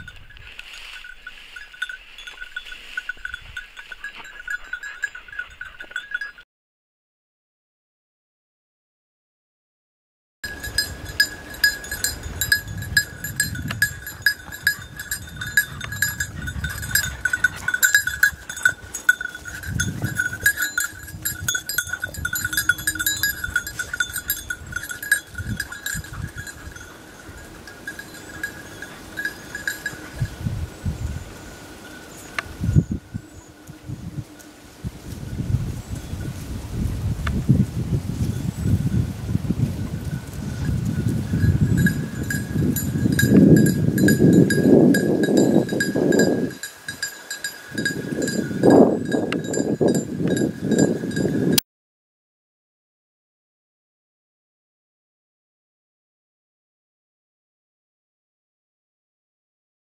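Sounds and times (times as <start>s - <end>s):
rustling in dry vegetation: 0.0s - 5.7s, 10.5s - 51.2s
dog bell jingling: 0.0s - 6.4s, 10.4s - 31.0s, 40.5s - 51.6s.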